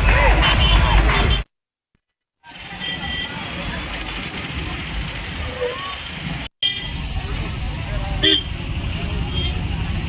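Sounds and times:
traffic: 0:00.0 - 0:01.5, 0:02.4 - 0:10.0.

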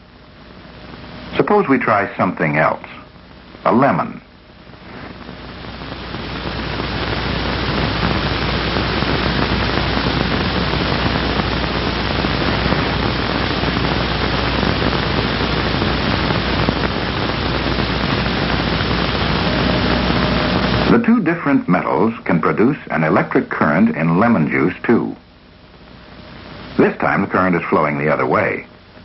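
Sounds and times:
loud steady film hiss: 0:00.0 - 0:29.0
low hum: 0:00.0 - 0:29.0.

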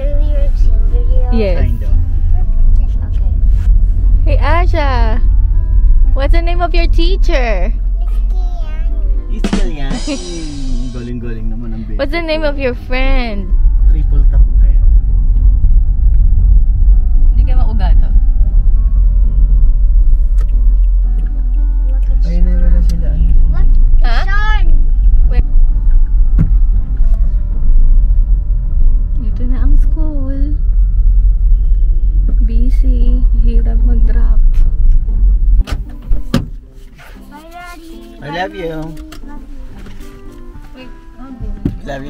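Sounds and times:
car interior road rumble: 0:00.0 - 0:42.0.

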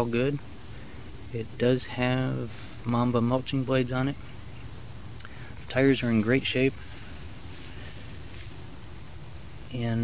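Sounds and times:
faint outdoor rumble: 0:00.0 - 0:10.0.

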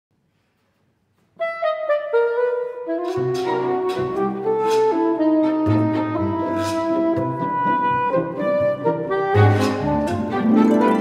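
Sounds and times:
soprano saxophone: 0:01.2 - 0:11.0.

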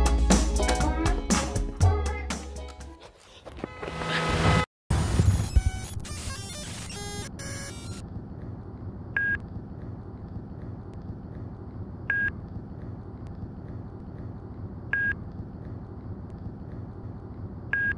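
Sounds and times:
stuttering glitch noise: 0:04.1 - 0:08.0
electronic beep: 0:05.4 - 0:08.0
steady low hum: 0:06.9 - 0:17.9.

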